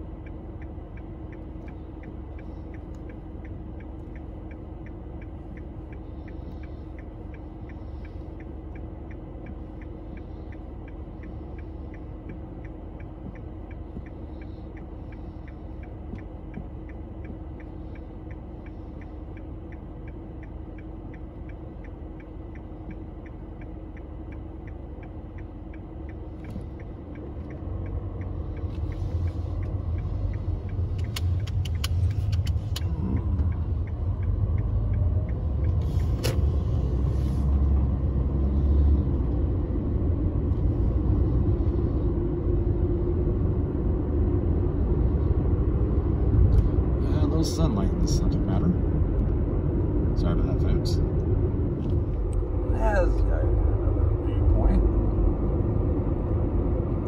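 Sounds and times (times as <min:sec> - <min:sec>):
car interior rumble: 0:00.0 - 0:57.0
turn signal ticking: 0:00.0 - 0:57.0
sharp clicks: 0:29.6 - 0:36.5.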